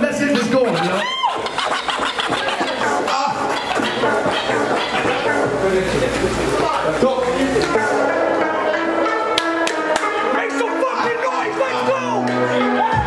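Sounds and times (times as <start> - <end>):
hip-hop music over a pa: 0.0 - 6.6, 7.3 - 13.0
turntable scratching: 0.0 - 8.1.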